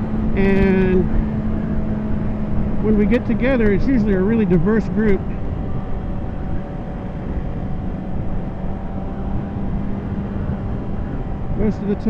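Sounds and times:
motorcycle engine droning: 0.0 - 12.0
wind rush on microphone: 0.0 - 12.0.

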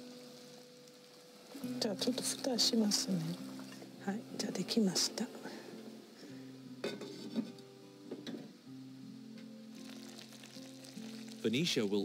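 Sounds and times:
pot simmering with faint sizzle: 0.0 - 12.0
soft background music: 0.0 - 12.0
lid clinking: 6.8 - 7.5.

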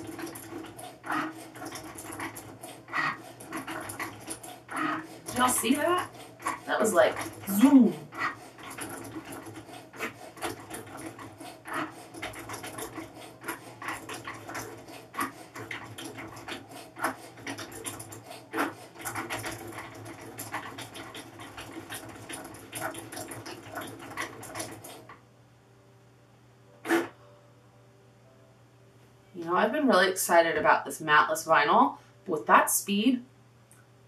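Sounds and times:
cutting machine motors whirring: 0.0 - 25.0.

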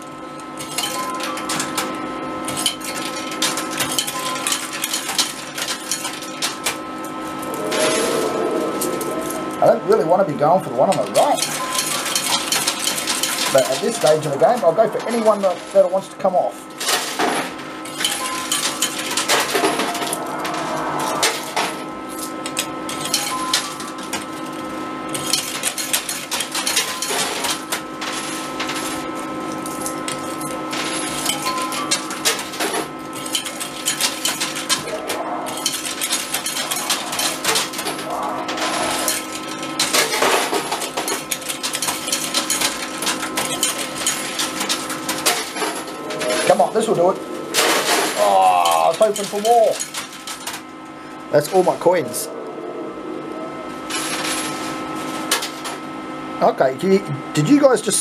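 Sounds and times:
machine electronic hum: 0.0 - 58.0.

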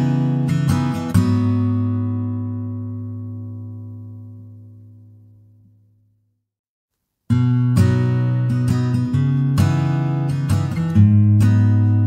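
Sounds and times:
acoustic guitar chord ringing: 0.0 - 5.8, 7.3 - 12.0.

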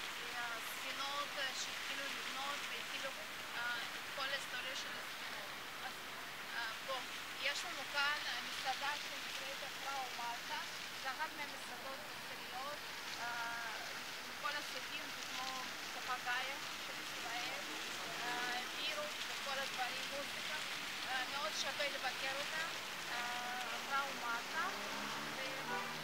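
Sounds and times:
fountain water splashing: 0.0 - 26.0
voices talking: 0.3 - 26.0.

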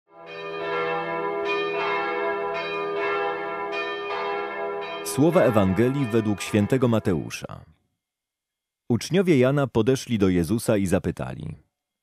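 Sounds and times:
bells ringing: 0.2 - 7.4.

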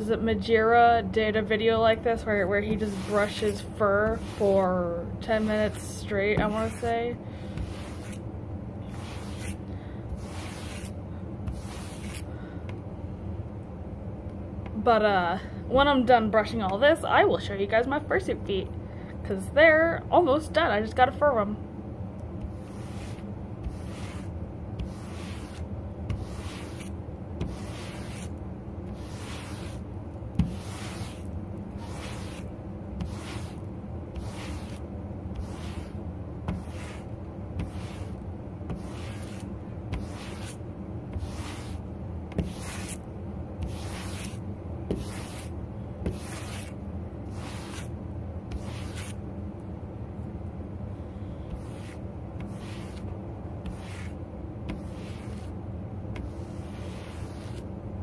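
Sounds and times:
brush raking through fur: 2.2 - 8.2, 8.8 - 12.3, 22.4 - 43.0, 43.6 - 47.9, 48.5 - 49.2, 51.5 - 55.5, 56.2 - 57.7.

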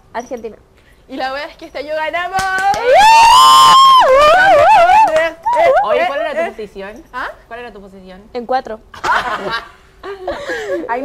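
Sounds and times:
woman shrieking: 2.8 - 6.1.

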